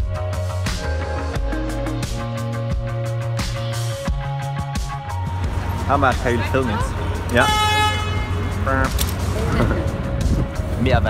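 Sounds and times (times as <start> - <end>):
city traffic rumble: 0.0 - 11.0
vehicle horn: 6.8 - 8.9.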